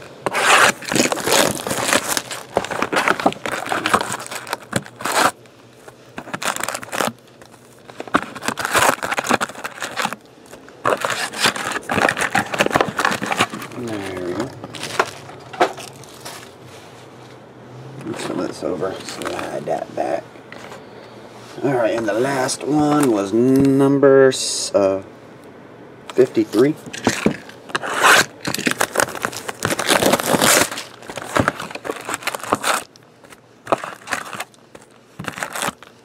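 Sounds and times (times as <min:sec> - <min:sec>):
foil card packs crinkling: 0:00.0 - 0:16.6, 0:18.0 - 0:20.2, 0:26.1 - 0:36.0.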